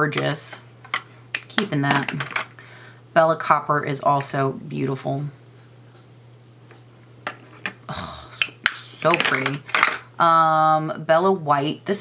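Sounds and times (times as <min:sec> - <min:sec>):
eyeshadow pots clicking: 0:00.9 - 0:02.4.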